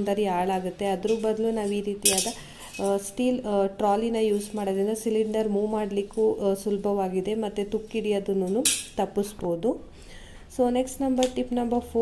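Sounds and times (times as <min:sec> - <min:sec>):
woman talking: 0:00.0 - 0:09.9, 0:10.5 - 0:12.0.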